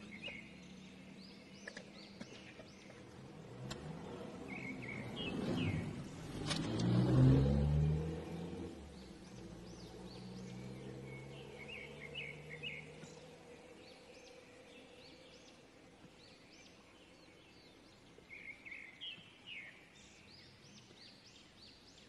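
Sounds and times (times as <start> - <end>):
birds chirping: 0.0 - 22.0
vehicle engine passing by: 2.8 - 15.5.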